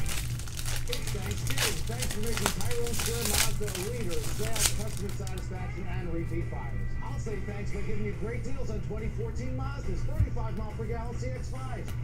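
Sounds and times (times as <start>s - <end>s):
foil wrapper crinkling and tearing: 0.0s - 5.5s.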